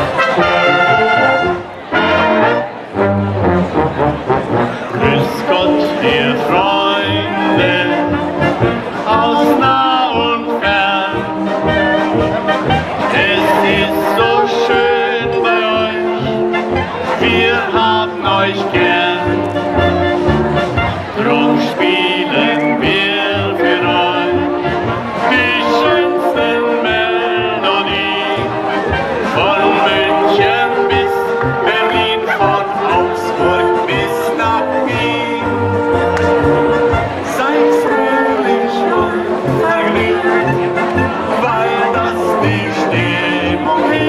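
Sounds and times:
festive brass music: 0.0s - 44.0s.

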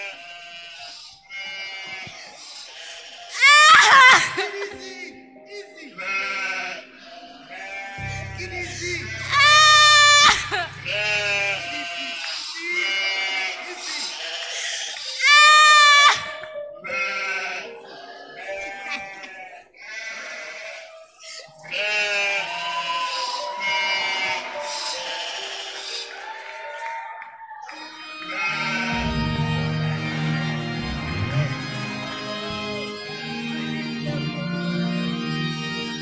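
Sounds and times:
person wailing and sobbing: 3.4s - 5.1s, 8.0s - 12.1s.

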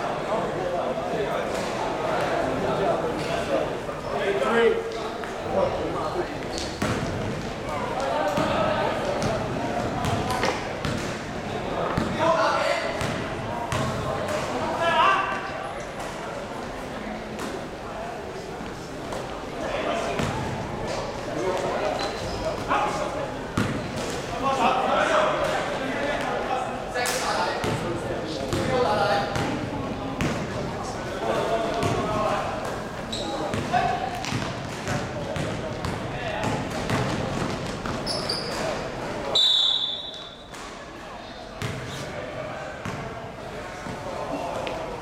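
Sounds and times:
basketball bouncing on court: 6.7s - 7.3s, 9.2s - 11.1s, 13.0s - 14.0s, 23.6s - 23.8s, 31.8s - 32.1s, 33.5s - 38.1s, 41.6s - 41.8s, 42.8s - 43.0s
shrill referee whistle blast: 39.3s - 40.4s.

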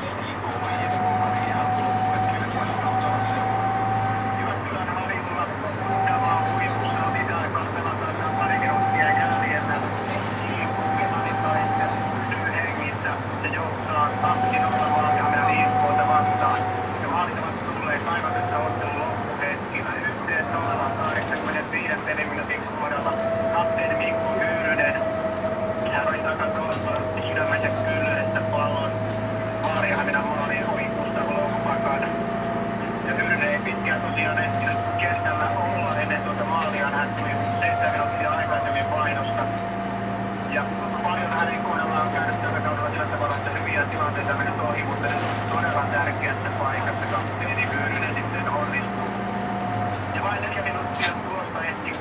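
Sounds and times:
bus engine drone: 0.0s - 52.0s
engine whine: 0.0s - 52.0s
indistinct background speech: 0.0s - 52.0s.

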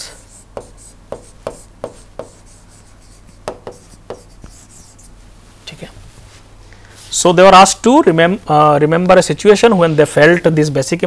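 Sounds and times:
stylus tapping on screen: 0.5s - 4.8s.

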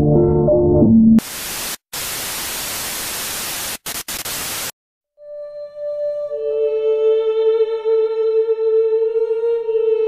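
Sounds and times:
television static hiss: 1.2s - 4.7s.

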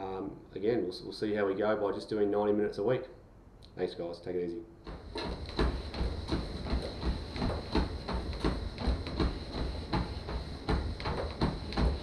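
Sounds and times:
footsteps on treadmill belt: 4.8s - 12.0s
treadmill running rumble: 4.8s - 12.0s.

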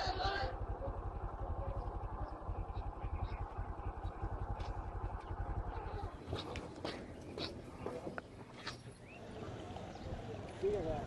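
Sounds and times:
small engine idling: 0.0s - 8.4s.

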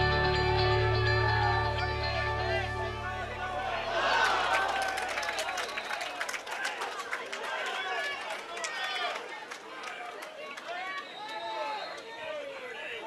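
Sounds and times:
distant people shouting: 2.3s - 6.1s.

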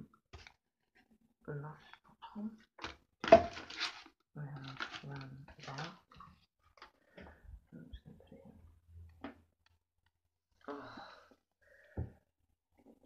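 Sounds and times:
person speaking indistinctly: 4.4s - 6.2s.

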